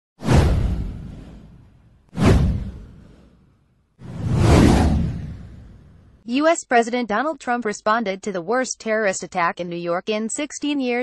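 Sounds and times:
whoosh sound effects: 0:00.2 - 0:06.2
deep rumble: 0:00.3 - 0:03.3, 0:04.0 - 0:06.2.

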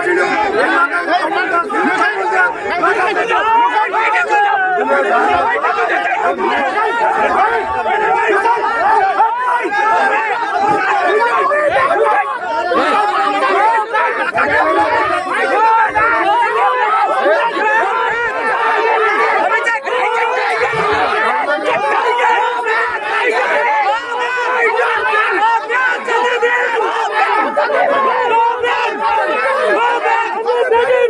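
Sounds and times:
crowd talking and shouting: 0:00.0 - 0:31.0.

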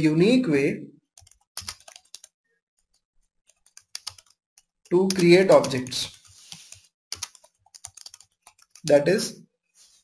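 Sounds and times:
computer keyboard key clicks: 0:03.7 - 0:04.4, 0:07.1 - 0:08.9.

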